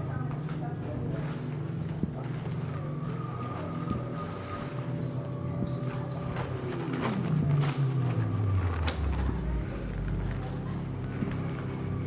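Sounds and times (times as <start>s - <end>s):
low drone: 2.5s - 12.0s.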